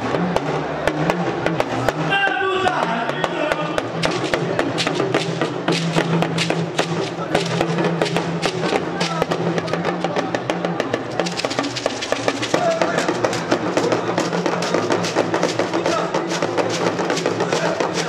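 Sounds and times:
talking drums rhythm: 0:00.0 - 0:18.0.

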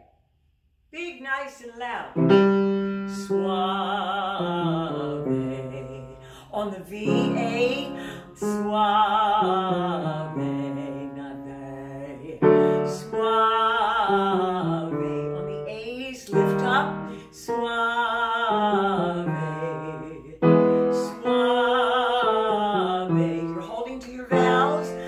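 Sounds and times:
piano chords: 0:02.2 - 0:25.0
woman singing vocal exercise: 0:03.0 - 0:25.0.

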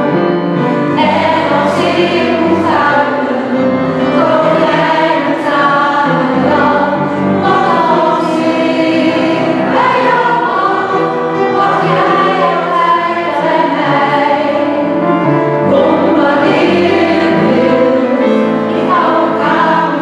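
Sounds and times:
piano: 0:00.0 - 0:20.0
mixed choir singing: 0:00.5 - 0:20.0.

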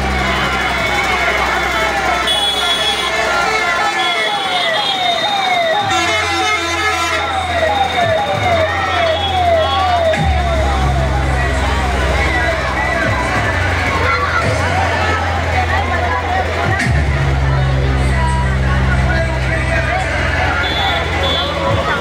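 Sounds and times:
loud music with heavy bass: 0:00.0 - 0:22.0
siren-like wail sweeping in pitch: 0:03.6 - 0:12.0.

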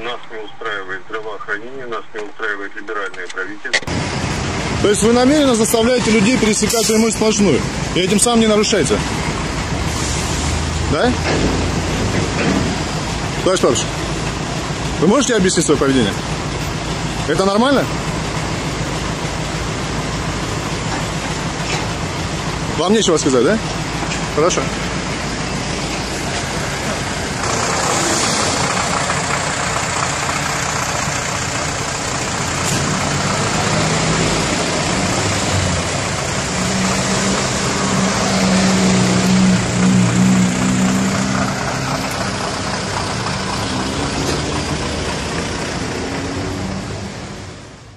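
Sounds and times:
heavy vehicle engines running: 0:00.0 - 0:47.9
road traffic: 0:00.0 - 0:47.9.

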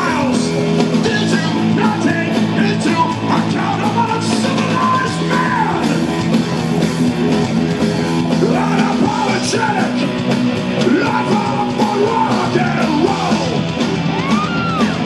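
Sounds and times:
hard rock band playing: 0:00.0 - 0:15.0.

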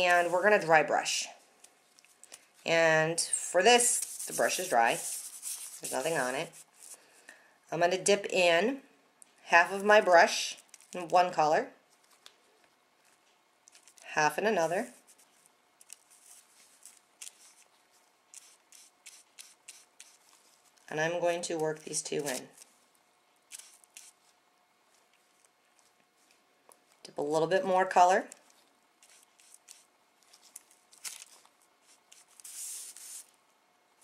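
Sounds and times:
paintbrush scratching on paper: 0:03.8 - 0:07.0, 0:16.1 - 0:17.7, 0:18.3 - 0:20.8, 0:23.6 - 0:24.4, 0:29.0 - 0:29.9, 0:31.8 - 0:33.3.

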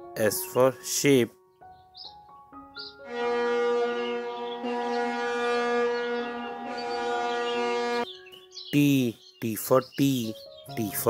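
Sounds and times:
ship's horn long blast: 0:03.0 - 0:08.0.

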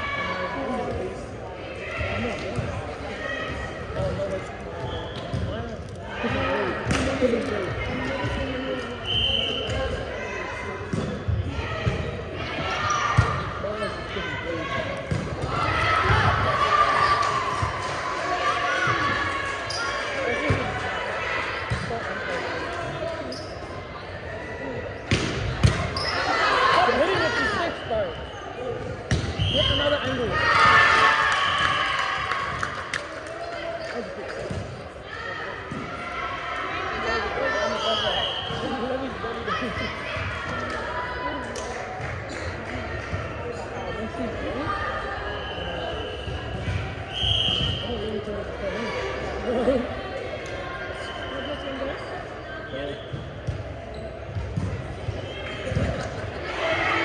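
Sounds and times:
whistle blasts: 0:09.0 - 0:09.8, 0:29.4 - 0:30.1, 0:37.8 - 0:38.6, 0:47.1 - 0:48.0.

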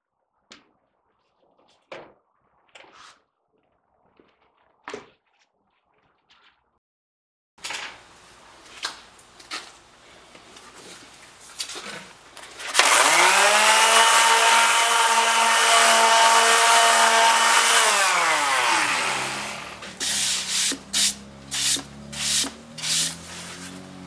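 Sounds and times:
electric sander whining: 0:12.7 - 0:20.4.

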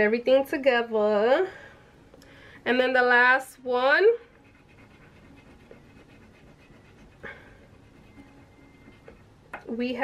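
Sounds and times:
coin scratching scratch card: 0:04.3 - 0:09.3.

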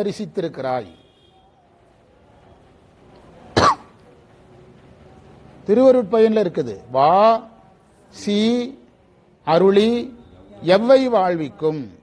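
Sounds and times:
single short cough: 0:03.6 - 0:04.0.

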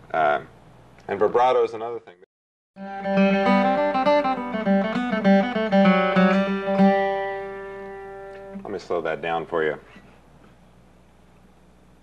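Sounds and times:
acoustic guitar flatpicked: 0:02.8 - 0:08.7.

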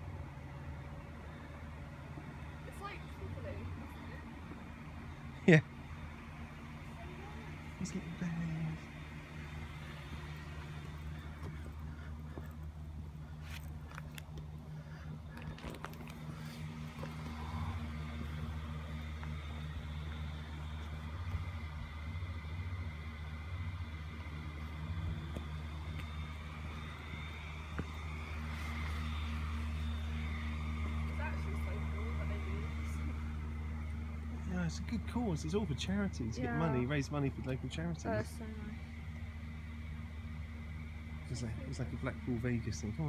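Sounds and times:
low mechanical hum: 0:00.0 - 0:43.0
people talking: 0:02.7 - 0:04.3, 0:06.9 - 0:08.9, 0:31.1 - 0:33.0, 0:34.4 - 0:38.8, 0:41.3 - 0:43.0.

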